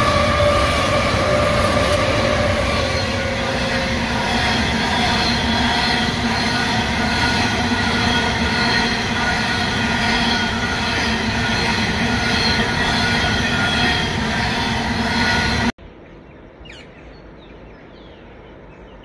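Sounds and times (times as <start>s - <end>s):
train wheels rumbling on rail: 0.0s - 15.7s.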